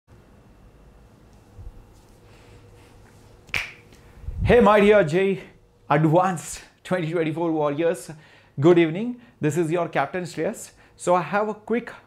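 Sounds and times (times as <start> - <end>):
faint room noise: 0.1 - 12.0.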